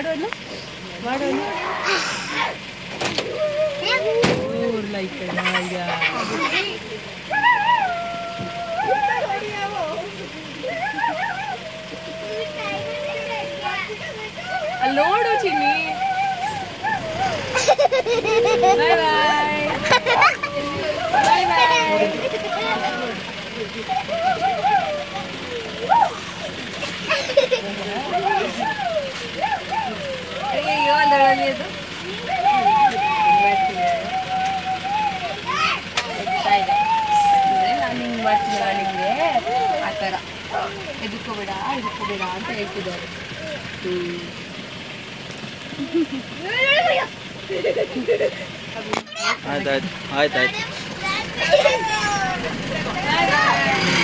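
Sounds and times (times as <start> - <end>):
bus engine hum: 0.0 - 54.0
children's voices calling: 0.0 - 54.0
child calling out sing-song: 3.3 - 4.7, 6.5 - 17.5, 28.2 - 41.0.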